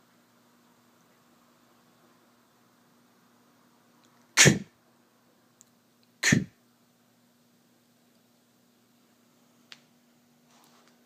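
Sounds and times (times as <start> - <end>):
person saying breathy kuh: 4.4 - 4.7, 6.2 - 6.6.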